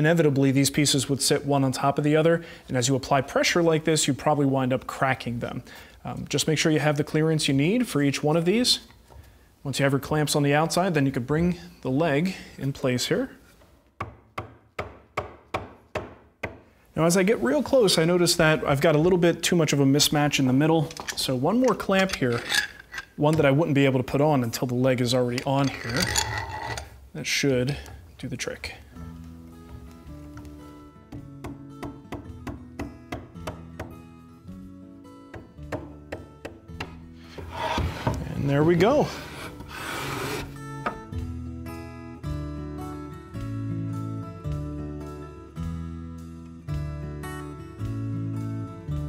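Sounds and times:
mallet tapping wood: 14.0s - 16.6s, 31.1s - 34.0s, 35.3s - 37.0s
background music: 28.2s - 49.0s
mallet knocking on wood: 35.3s - 37.0s.

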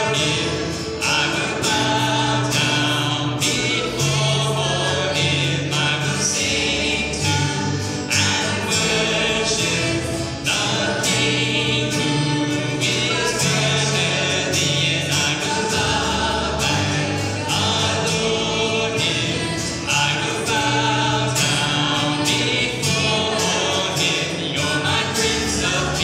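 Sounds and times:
band singing a hymn: 0.0s - 26.0s
strummed acoustic guitars: 0.0s - 26.0s
upright bass low notes: 0.0s - 26.0s.

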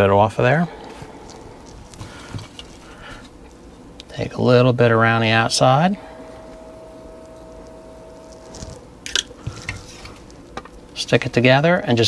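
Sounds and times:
low room hum: 0.0s - 12.0s
faint rubbing: 4.8s - 10.4s.

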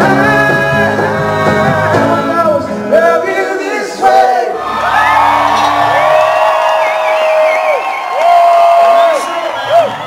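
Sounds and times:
live rock band music: 0.0s - 7.4s
crowd cheering and whooping: 0.8s - 2.1s, 4.4s - 10.0s.

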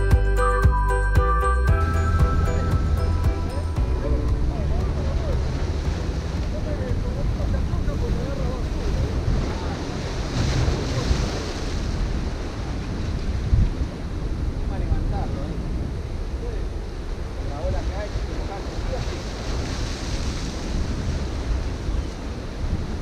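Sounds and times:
background music: 0.0s - 7.5s
wind buffeting microphone: 2.7s - 23.0s
surf breaking against rocks: 4.3s - 16.0s, 16.9s - 23.0s.

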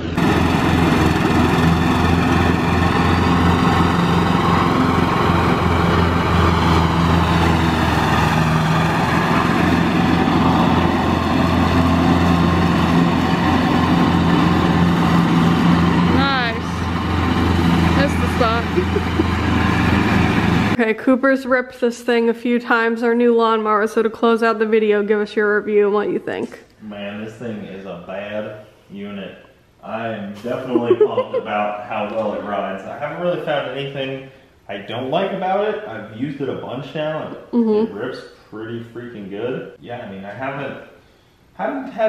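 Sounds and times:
riding lawn mower engine: 0.0s - 20.8s.

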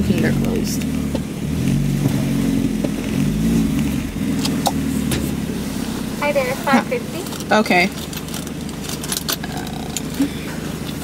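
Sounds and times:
car engine humming: 0.0s - 11.0s.

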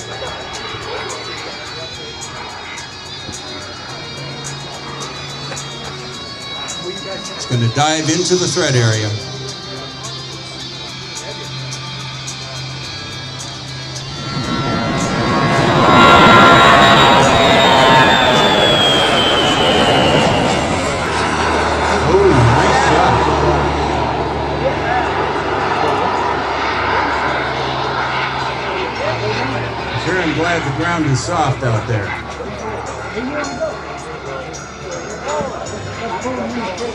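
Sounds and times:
model jet turbines passing: 0.0s - 36.9s
whine falling in pitch: 13.6s - 32.4s.

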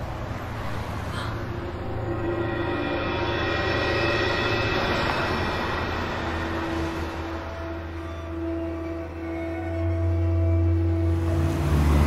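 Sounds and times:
rush of noise: 0.0s - 10.0s
low drone: 0.0s - 12.0s.

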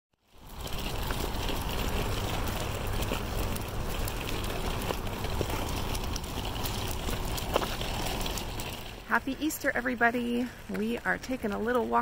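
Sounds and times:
wheels rolling over asphalt: 0.2s - 12.0s.

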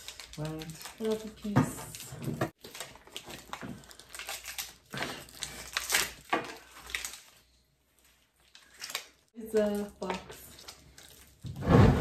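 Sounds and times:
packaging crinkling and rustling: 0.0s - 11.6s.

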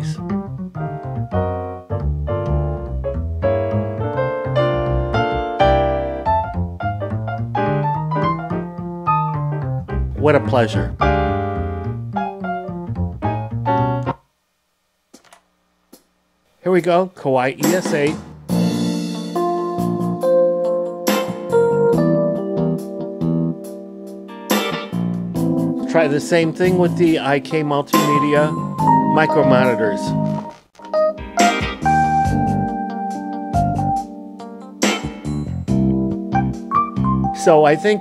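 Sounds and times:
digital piano playing: 0.0s - 14.2s, 17.7s - 38.0s.

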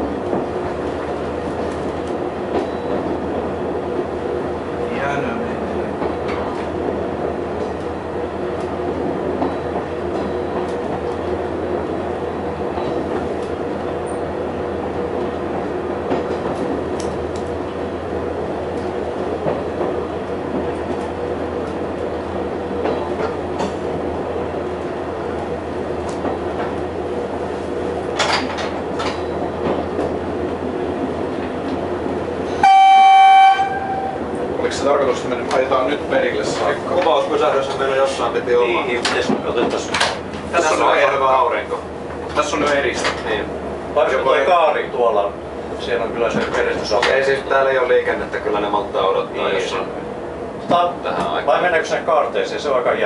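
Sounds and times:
diesel railcar engine drone: 0.0s - 53.0s
railcar horn blast: 32.6s - 34.3s.

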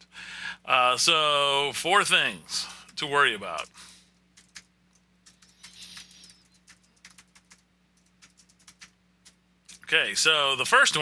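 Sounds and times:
typing on computer keyboard: 4.3s - 9.4s.

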